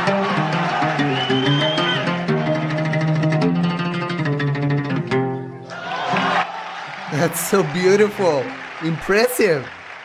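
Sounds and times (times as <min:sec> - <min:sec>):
oud rapid plucked notes: 0:00.0 - 0:05.7.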